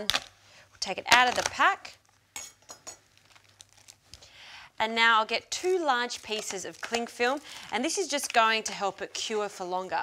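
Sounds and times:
plastic film peeling: 3.2 - 4.2.

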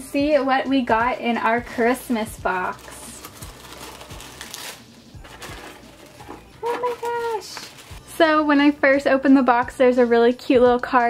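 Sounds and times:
tissue paper rustling and crinkling: 1.8 - 8.2.

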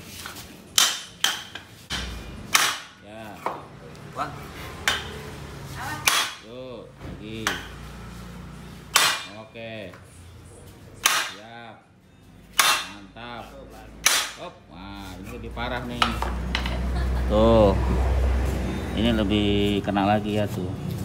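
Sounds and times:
hammer striking steel: 0.7 - 3.0, 6.0 - 6.5, 8.9 - 9.4, 11.0 - 11.5, 12.5 - 13.2, 14.0 - 14.5.

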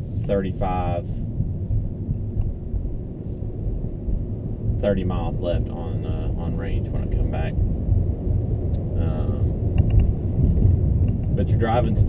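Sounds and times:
road and tyre rumble in car cabin: 0.0 - 12.0.

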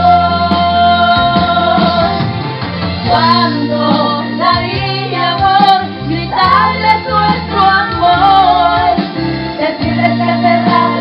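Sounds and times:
woman singing into microphone: 0.0 - 2.3, 3.0 - 11.0
musical accompaniment with bass: 0.0 - 11.0.

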